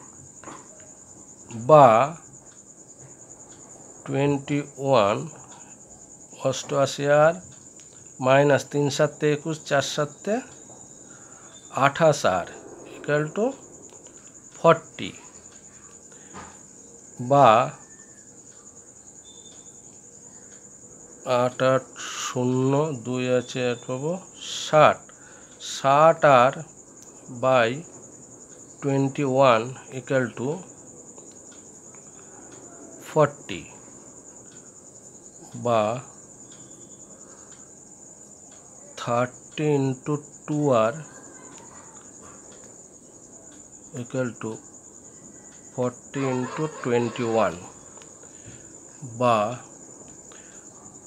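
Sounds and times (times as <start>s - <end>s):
cricket trilling: 0.0s - 51.0s
person speaking a syllable: 11.8s - 13.6s, 45.8s - 47.8s.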